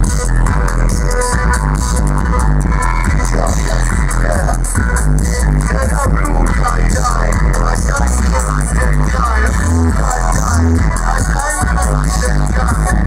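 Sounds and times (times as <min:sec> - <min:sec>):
loud bass-heavy music: 0:00.0 - 0:13.0.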